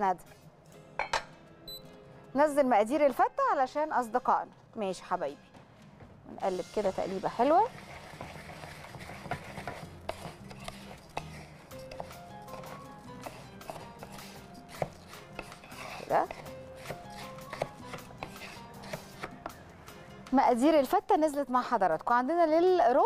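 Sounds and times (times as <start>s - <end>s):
light background music: 0.0s - 23.0s
spoon stirring rice in pot: 7.5s - 19.5s.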